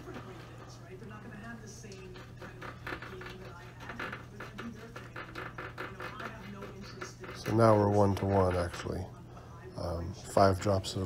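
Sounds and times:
faint background speech: 0.0s - 11.0s.

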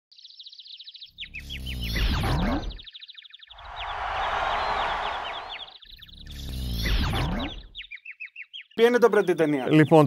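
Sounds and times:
rushing noise swell: 3.6s - 5.7s.

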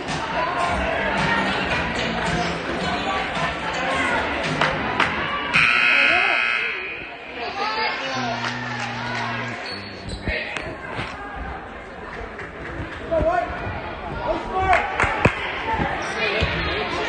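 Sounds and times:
voices chattering: 0.0s - 17.0s
scoreboard horn: 5.5s - 7.0s, 8.2s - 10.2s.

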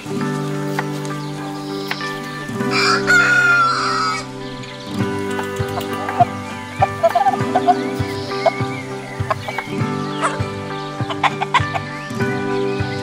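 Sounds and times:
chickens clucking: 0.0s - 12.4s
soft background music: 0.0s - 13.0s.

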